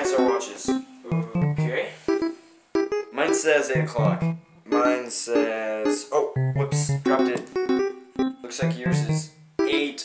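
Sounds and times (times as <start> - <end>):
person speaking: 0.0 - 10.0
piano music with held notes: 0.0 - 10.0.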